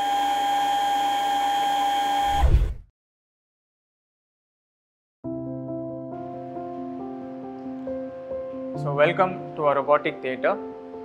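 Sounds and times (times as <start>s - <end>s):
electric machine whine: 0.0s - 2.5s
low thump: 2.3s - 2.8s.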